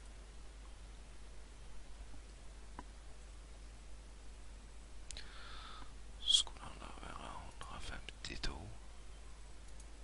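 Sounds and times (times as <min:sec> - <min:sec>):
man whispering and muttering: 0:06.2 - 0:08.8
faint clicks: 0:09.6 - 0:09.9.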